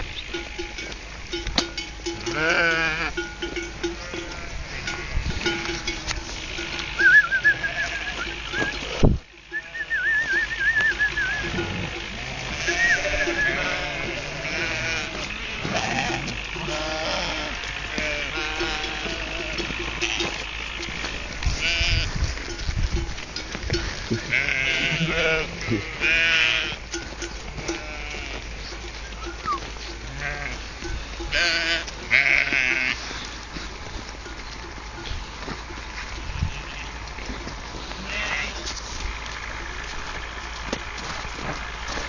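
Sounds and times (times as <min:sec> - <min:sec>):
sheep bleating: 0:02.2 - 0:05.9, 0:06.6 - 0:22.2, 0:23.8 - 0:33.4, 0:36.2 - 0:37.0, 0:37.8 - 0:38.8.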